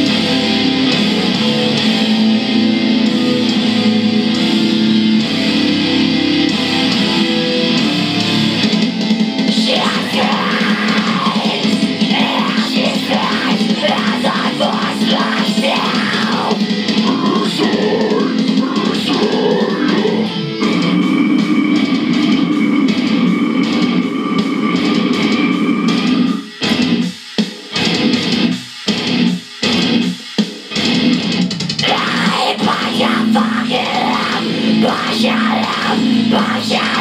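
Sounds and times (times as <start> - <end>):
heavy metal guitar and drums: 0.0 - 37.0.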